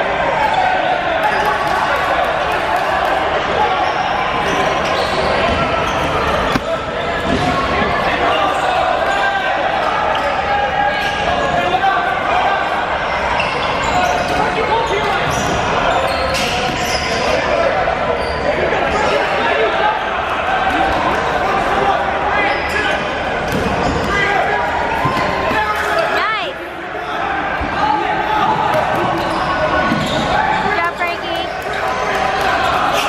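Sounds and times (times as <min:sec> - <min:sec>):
players shouting: 0:00.0 - 0:33.0.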